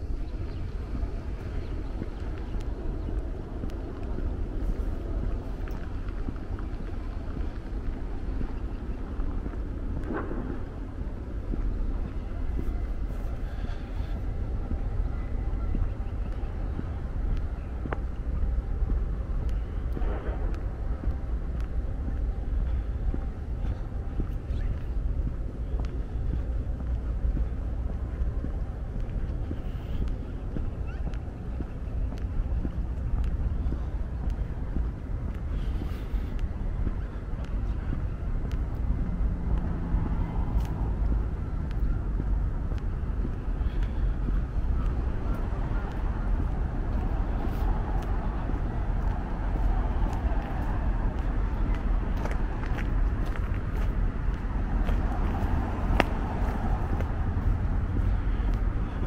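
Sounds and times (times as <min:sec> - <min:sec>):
low rumble of road traffic: 0:00.0 - 0:59.0.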